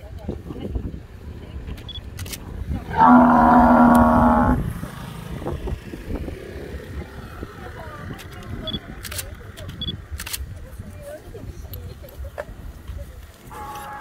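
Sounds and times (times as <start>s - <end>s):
wind rumble on microphone: 0.0s - 14.0s
cattle calling: 2.9s - 4.7s.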